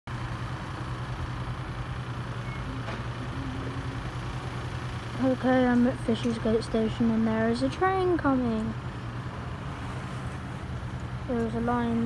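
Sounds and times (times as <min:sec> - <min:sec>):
outdoor street noise: 0:00.1 - 0:12.0
vehicle engine idling: 0:00.1 - 0:12.0.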